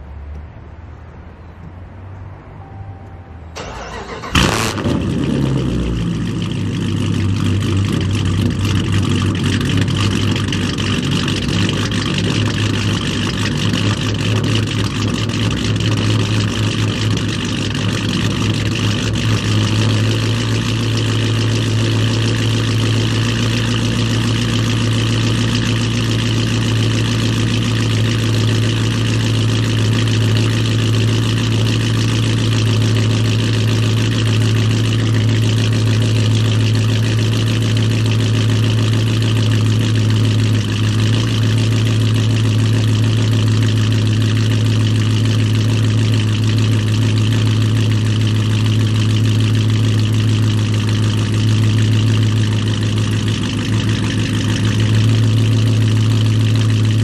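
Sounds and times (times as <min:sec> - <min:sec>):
car engine cranking and idling: 0:02.6 - 0:57.0.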